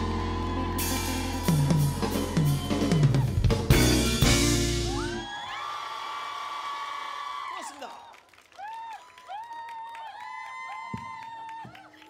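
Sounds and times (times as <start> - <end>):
concert crowd screaming and cheering: 0.0 - 8.0, 8.6 - 12.0.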